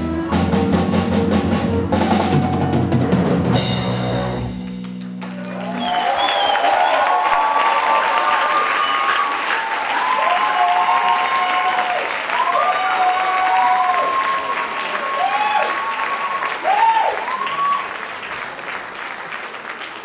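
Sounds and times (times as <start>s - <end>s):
audience applauding: 4.6s - 20.0s
long drawn-out cheers: 5.2s - 18.3s.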